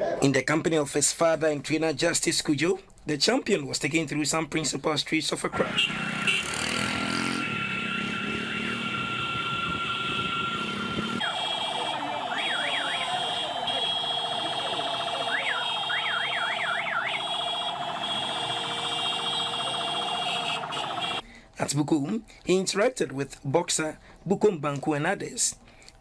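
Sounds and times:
electronic siren yelping: 5.6s - 21.2s.

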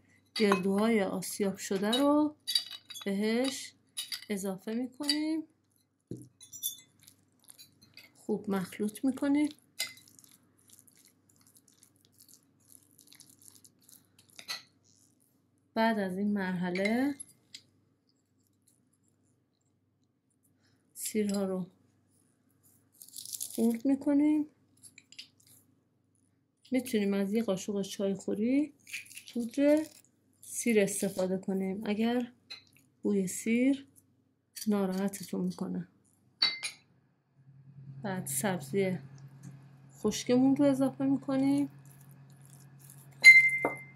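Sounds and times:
spoon clinking glass bowl: 0.4s - 0.9s, 6.4s - 8.1s, 9.8s - 10.3s, 41.8s - 43.9s
spoon stirring in glass bowl: 5.0s - 9.1s, 9.8s - 15.1s, 41.3s - 43.9s
low steady hum: 34.8s - 43.9s.

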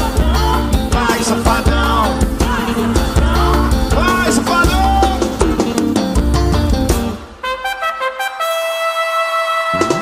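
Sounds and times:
drum kit beat: 0.0s - 8.1s, 9.7s - 10.0s
live band playing: 0.0s - 10.0s.

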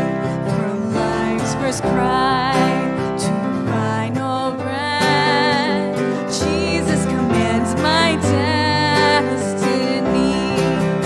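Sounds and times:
acoustic guitar: 0.0s - 11.0s
keyboard: 0.0s - 11.0s
woman singing with vibrato: 0.0s - 11.0s.

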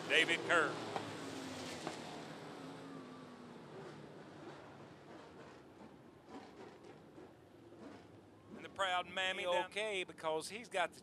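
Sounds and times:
distant race car engines: 0.0s - 11.0s.

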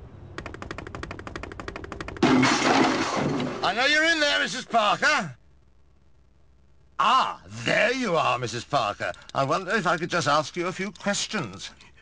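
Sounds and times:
rapid sharp bangs: 0.4s - 3.8s.

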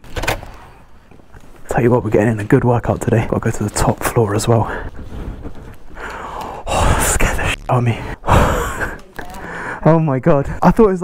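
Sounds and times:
man speaking: 1.6s - 5.0s, 6.5s - 11.0s
quiet breathing: 3.6s - 10.6s.

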